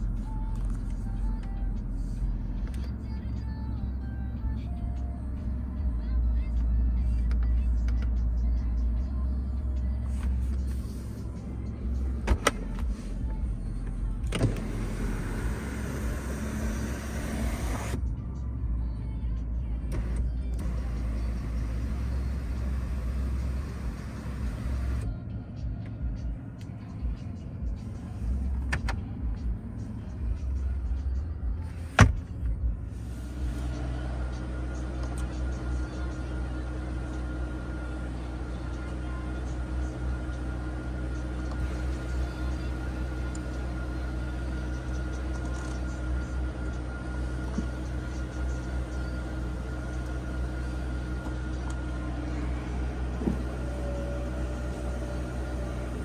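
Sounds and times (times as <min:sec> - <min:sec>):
car engine idling: 0:00.0 - 0:56.0
sharp clicks of controls: 0:12.2 - 0:18.1, 0:28.5 - 0:29.5, 0:34.8 - 0:35.7.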